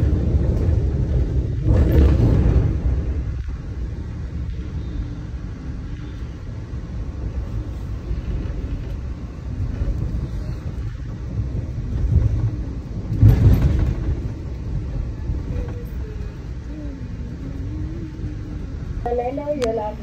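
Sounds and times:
train rumble from inside coach: 0.0 - 20.0.

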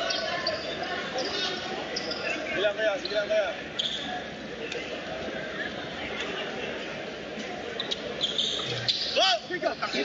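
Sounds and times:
crowd chatter and shouts: 0.0 - 10.0.

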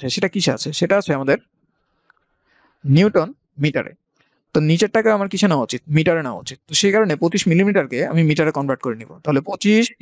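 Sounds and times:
man speaking: 0.0 - 1.5, 2.8 - 4.0, 4.6 - 10.0.

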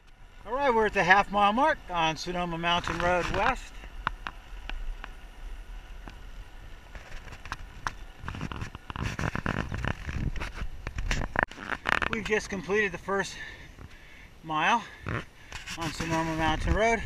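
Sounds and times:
bicycle rattling over asphalt: 0.0 - 14.2, 14.8 - 17.0
low wind rumble: 0.0 - 17.0.

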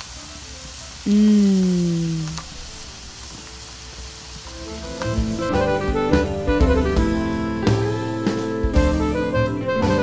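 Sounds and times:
faint sizzling: 0.0 - 9.1
background music with drums: 4.5 - 10.0.

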